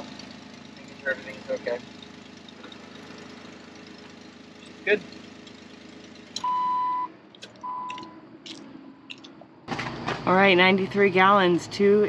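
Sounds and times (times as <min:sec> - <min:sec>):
car engine idling: 0:00.0 - 0:12.0
electronic beeps: 0:06.4 - 0:08.2
vehicle chime: 0:06.4 - 0:08.2.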